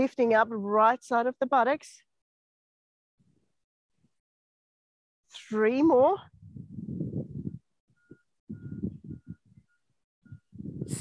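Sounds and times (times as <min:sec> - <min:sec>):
wind buffeting the microphone: 0:05.8 - 0:11.0
faint high beeping tone: 0:07.5 - 0:10.6.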